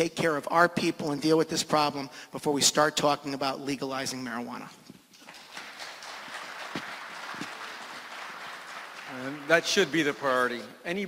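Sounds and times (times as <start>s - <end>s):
audience clapping: 5.2s - 11.0s.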